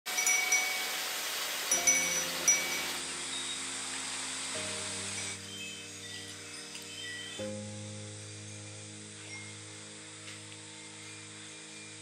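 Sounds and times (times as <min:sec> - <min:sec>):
porcelain wind chimes ringing: 0:00.1 - 0:07.4, 0:09.2 - 0:09.8
soft background music: 0:00.2 - 0:12.0.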